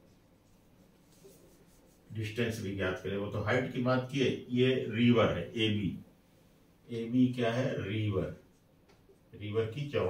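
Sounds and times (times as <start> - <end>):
marker writing on whiteboard: 1.0 - 2.1.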